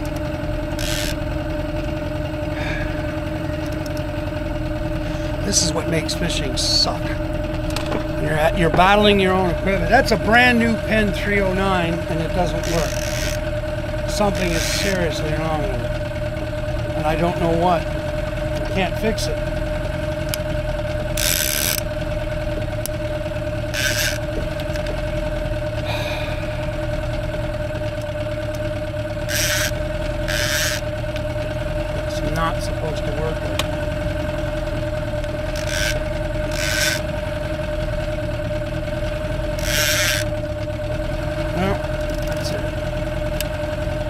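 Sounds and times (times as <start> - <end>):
outboard motor idling: 0.0 - 44.0
fishing reel rasping: 0.1 - 1.4, 12.5 - 15.3, 21.1 - 22.1, 23.6 - 25.0, 29.2 - 31.2, 35.3 - 37.2, 39.3 - 40.4, 42.0 - 42.5.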